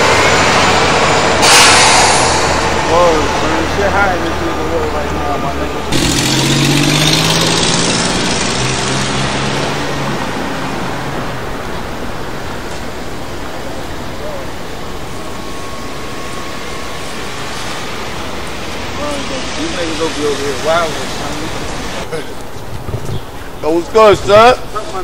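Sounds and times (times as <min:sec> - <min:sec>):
vehicle passing: 0:00.0 - 0:22.3
city traffic noise: 0:00.0 - 0:25.0.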